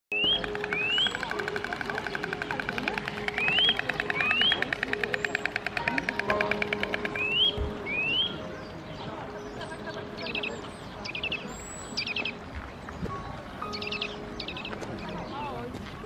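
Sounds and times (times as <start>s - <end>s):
bird whistling calls: 0.1s - 8.5s.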